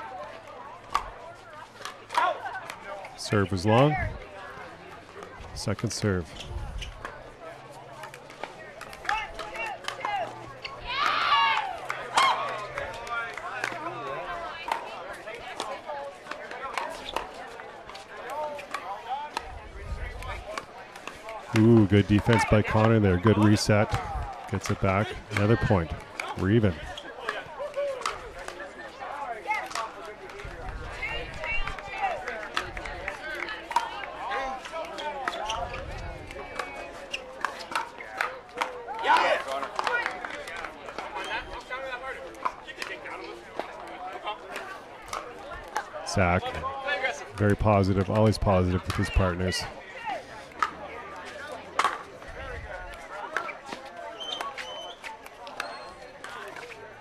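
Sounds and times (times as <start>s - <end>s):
voices talking: 0.0s - 57.0s
paddles hitting plastic ball: 20.2s - 26.5s.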